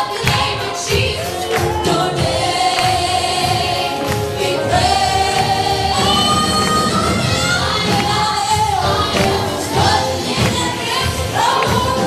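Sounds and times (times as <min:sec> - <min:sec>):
group singing in harmony: 0:00.0 - 0:12.0
guitar: 0:00.0 - 0:12.0
keyboard: 0:00.0 - 0:12.0.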